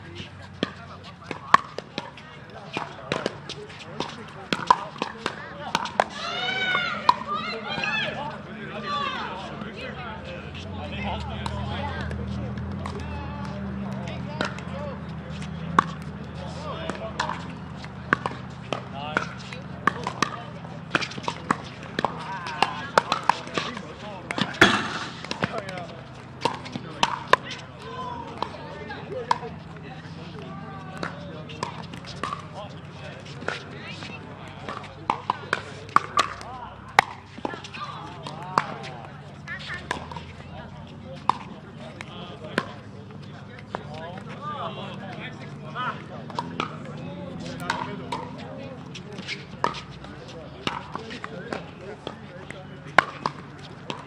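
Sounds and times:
players' voices murmuring: 0.0 - 54.0
paddles hitting plastic ball: 16.9 - 28.6, 30.9 - 39.1.

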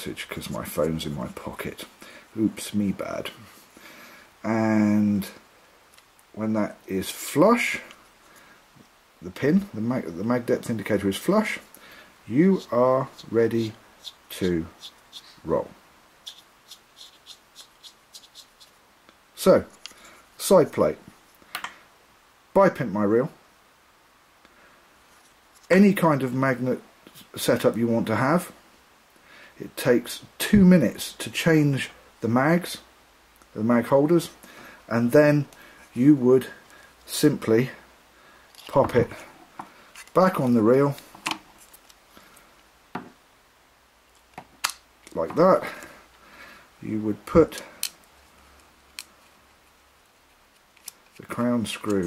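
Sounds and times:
faint handling sounds: 25.0 - 26.0, 38.4 - 43.1, 47.0 - 52.0.

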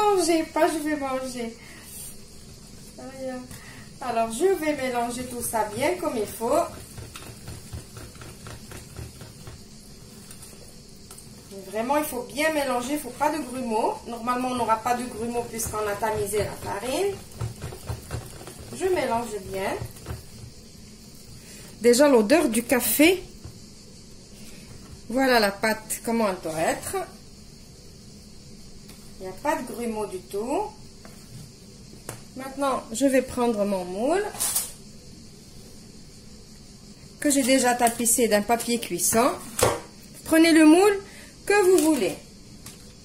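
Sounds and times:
whisk swishing batter: 5.8 - 9.6, 15.1 - 20.2
whisk scraping batter in bowl: 6.4 - 9.5.

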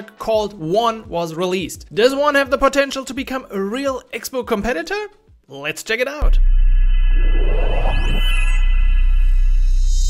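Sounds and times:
deep bass drone: 6.2 - 10.0
rising sweep: 6.2 - 10.0
sustained high tones: 6.2 - 10.0
whoosh: 6.2 - 10.0.

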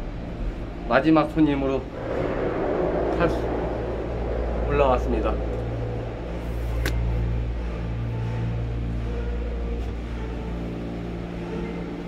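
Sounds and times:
low mechanical hum of machinery: 0.0 - 12.0.

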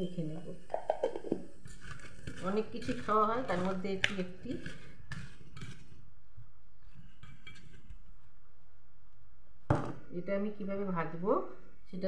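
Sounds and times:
eggplant pieces tossed in steel bowl: 1.6 - 5.9.

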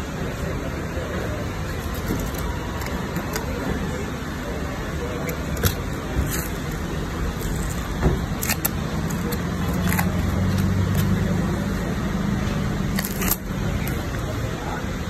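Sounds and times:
vehicle engine hum: 0.0 - 15.0.

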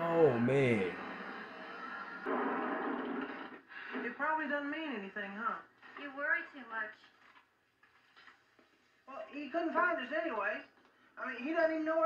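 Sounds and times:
person speaking: 0.0 - 1.0.

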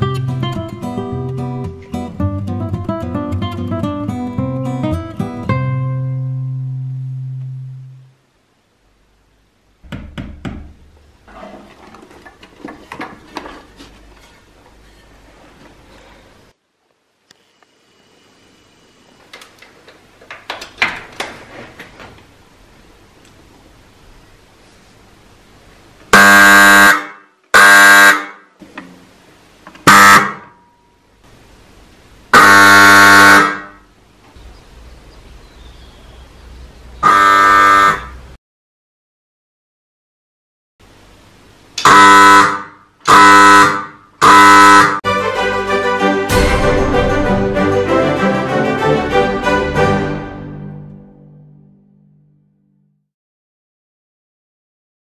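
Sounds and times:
sharp knocks: 9.8 - 10.8
clicks and rustling handling noises: 11.4 - 16.0
level crossing warning horn: 26.1 - 28.3, 29.9 - 30.6, 32.3 - 33.8, 37.0 - 38.3, 41.8 - 46.5
strummed guitar chord: 45.1 - 52.9.

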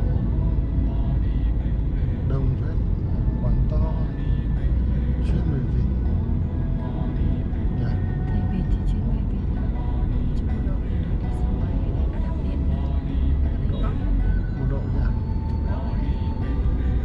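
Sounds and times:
car driving rumble inside cabin: 0.0 - 17.0
music playing: 0.0 - 17.0
voice: 2.3 - 4.4, 5.2 - 6.1, 7.8 - 9.8, 13.6 - 16.0.

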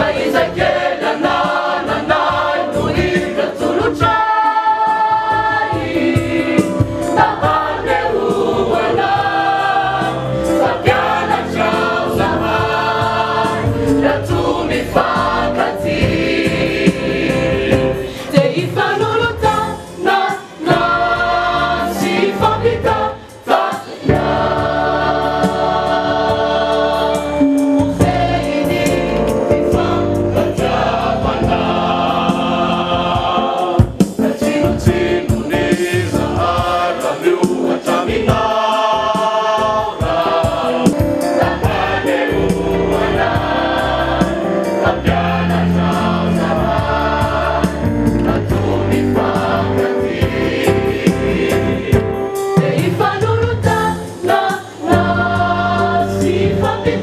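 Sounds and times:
choir singing: 0.0 - 57.0.

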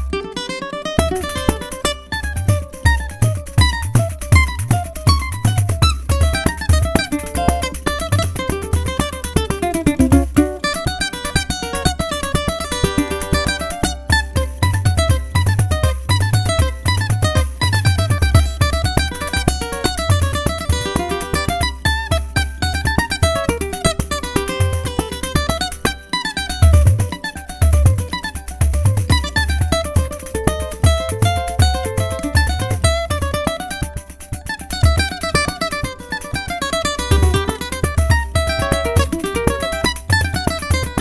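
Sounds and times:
plucked string melody: 0.0 - 41.0.

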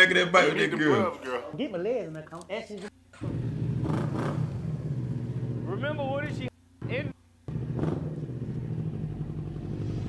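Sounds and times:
motorcycle engine idling: 3.2 - 6.1, 7.5 - 10.0.

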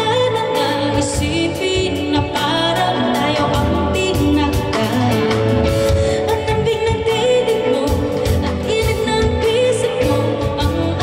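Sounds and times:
band with bass and drums: 0.0 - 11.0
woman singing into a microphone: 0.0 - 11.0.

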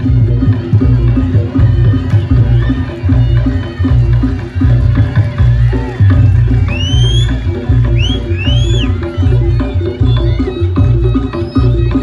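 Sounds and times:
drums and gongs rhythm: 0.0 - 12.0.

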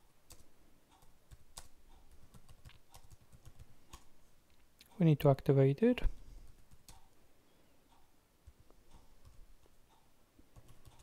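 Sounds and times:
keyboard typing: 0.3 - 4.1, 6.4 - 7.2, 8.4 - 9.7, 10.5 - 11.0.

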